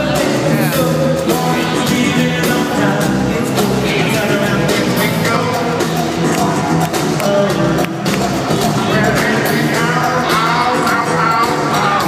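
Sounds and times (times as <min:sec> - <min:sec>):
live funk rock band with vocals: 0:00.0 - 0:12.0.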